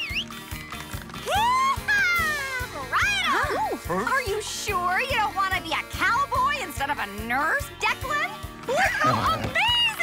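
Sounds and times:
cheerful cartoon music: 0:00.0 - 0:10.0.

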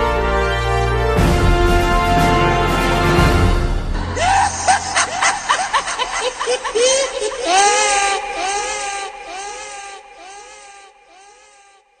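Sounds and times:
pitched cry with echo: 0:04.0 - 0:12.0.

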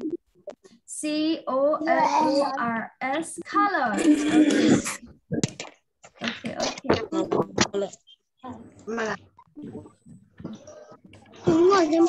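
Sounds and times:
child's wavering vocal sound: 0:01.8 - 0:02.7.

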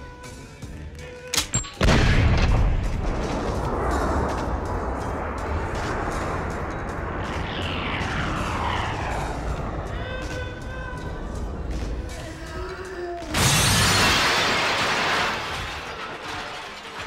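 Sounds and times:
film score: 0:00.0 - 0:17.0
gunshot with rumbling boom: 0:01.8 - 0:09.1
bullet whooshes: 0:03.4 - 0:09.9.

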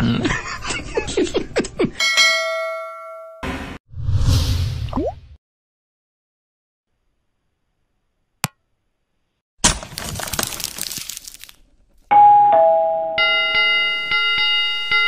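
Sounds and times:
two-note ding-dong chime: 0:12.1 - 0:15.0.

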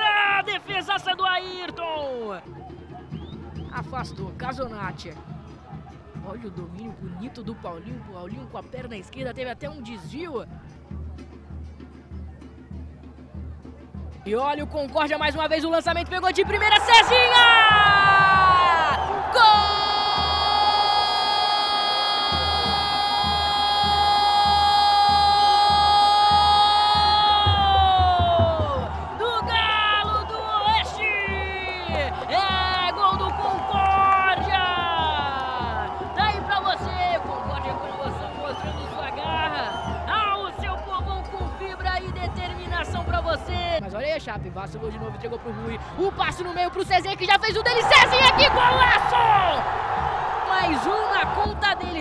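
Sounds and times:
commentator shouting goal cry: 0:00.0 - 0:02.5, 0:06.2 - 0:10.6, 0:14.3 - 0:52.0
excited rapid commentary: 0:00.0 - 0:10.8, 0:14.1 - 0:52.0
crowd noise: 0:00.0 - 0:52.0.

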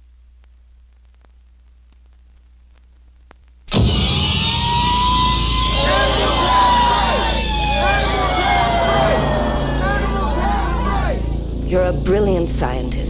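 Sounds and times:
siren wail: 0:03.7 - 0:11.4
crowd voices: 0:03.9 - 0:11.4.

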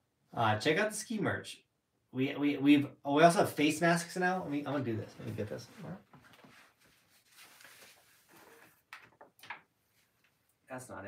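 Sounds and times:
soft rustling: 0:04.5 - 0:08.9, 0:09.8 - 0:10.6.

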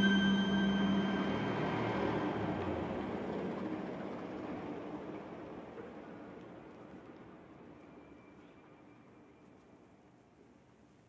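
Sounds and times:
bell-like tone ringing: 0:00.0 - 0:03.0
ambient meditation music: 0:00.0 - 0:03.4.

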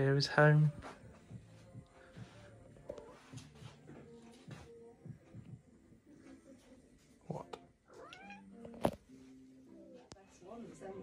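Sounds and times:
cat meowing: 0:07.9 - 0:08.6.

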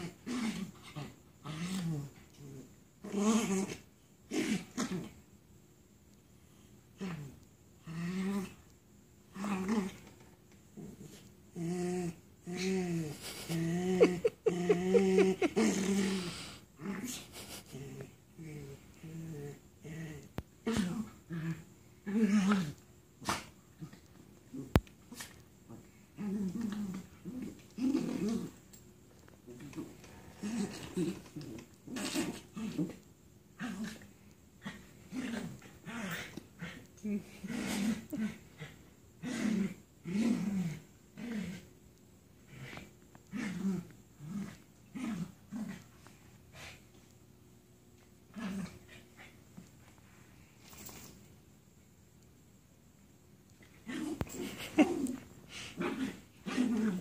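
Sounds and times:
dogs grumbling while play-wrestling: 0:00.0 - 0:05.2, 0:07.0 - 0:08.7, 0:09.3 - 0:41.7, 0:42.4 - 0:47.1, 0:48.3 - 0:49.8, 0:53.6 - 0:57.0.

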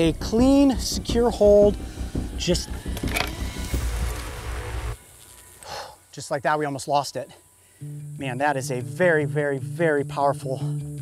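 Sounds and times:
wasp buzzing: 0:00.0 - 0:09.4.

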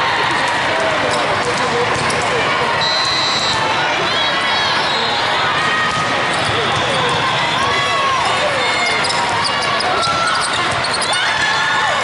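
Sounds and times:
many voices talking and calling: 0:00.0 - 0:12.0
volleyballs hit and bouncing: 0:00.2 - 0:02.7, 0:05.6 - 0:12.0
sneakers squeaking on court floor: 0:08.4 - 0:11.4.

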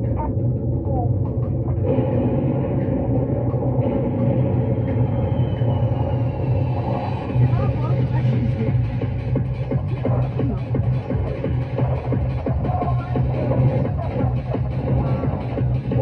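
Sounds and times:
elevator rumble: 0:00.0 - 0:16.0
faint voices: 0:06.8 - 0:16.0.

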